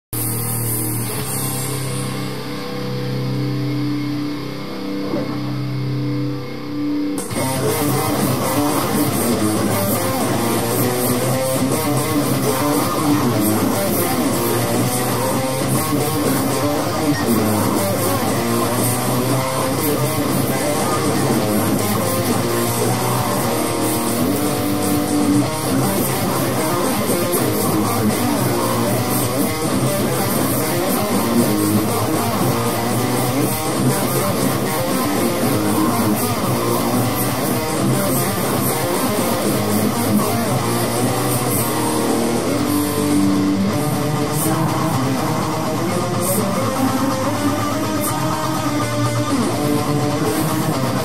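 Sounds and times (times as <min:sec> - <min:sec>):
distorted electric guitar sustained notes: 0:00.0 - 0:51.0.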